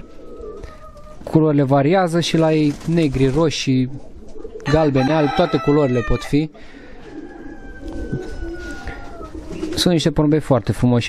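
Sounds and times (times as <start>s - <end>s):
pigeons cooing: 0.0s - 10.6s.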